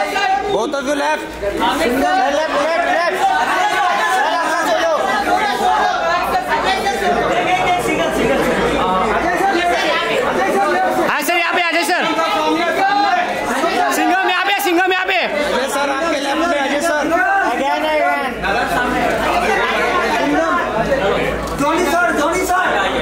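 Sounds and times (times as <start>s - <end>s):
crowd chatter in a large hall: 0.0s - 23.0s.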